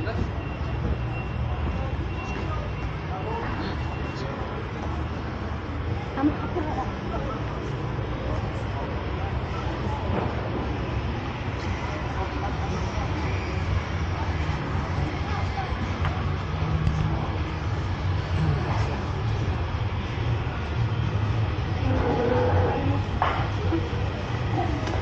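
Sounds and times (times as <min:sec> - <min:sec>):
low city rumble: 0:00.0 - 0:25.0
passers-by talking: 0:00.0 - 0:25.0.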